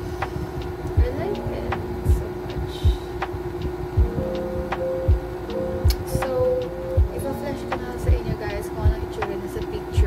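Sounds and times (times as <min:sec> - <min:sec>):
background music with drum beat: 0:00.2 - 0:09.4.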